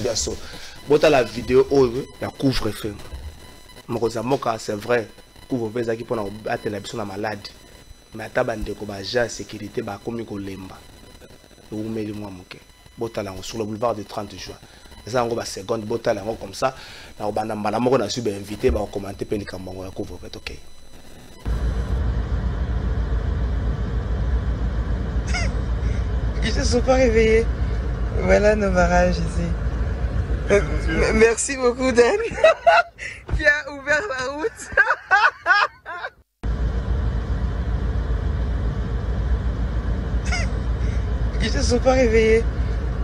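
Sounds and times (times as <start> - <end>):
car engine and road rumble: 21.5 - 27.2
short high-pitched cry: 25.2 - 25.7, 40.2 - 40.6.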